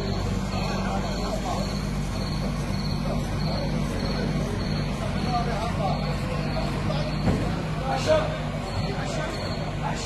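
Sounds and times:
faint voices: 0.0 - 10.0
heavy vehicle engine drone: 0.0 - 10.0.

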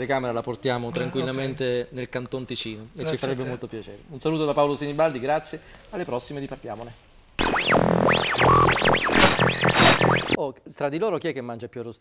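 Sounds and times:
static hiss: 7.1 - 10.4
synthesized swooping tones: 7.4 - 10.4.

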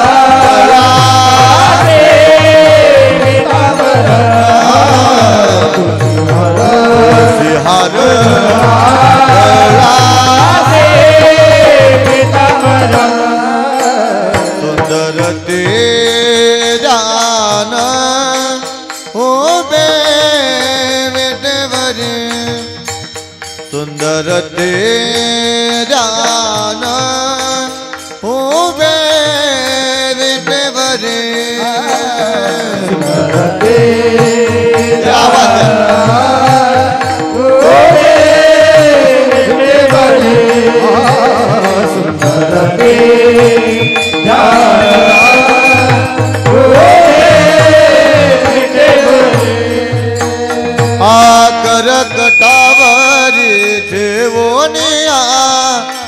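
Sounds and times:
person singing ornamented melody: 0.0 - 23.0, 23.6 - 56.0
small hand cymbals: 0.0 - 56.0
brass hand cymbals: 35.9 - 56.0
held drone notes: 38.7 - 54.9.

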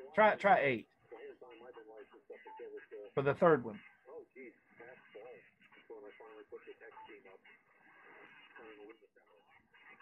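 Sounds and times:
radio voice through speaker: 0.0 - 10.0.

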